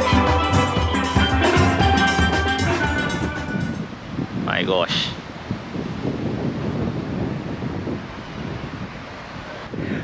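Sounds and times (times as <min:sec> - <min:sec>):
wind blowing on microphone: 0:01.5 - 0:10.0.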